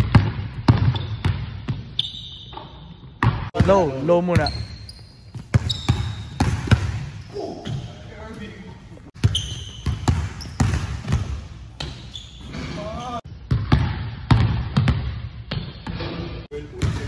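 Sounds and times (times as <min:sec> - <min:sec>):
basketball bouncing on hardwood floor: 0:00.0 - 0:01.9, 0:05.3 - 0:07.1, 0:09.2 - 0:12.0, 0:13.5 - 0:16.0.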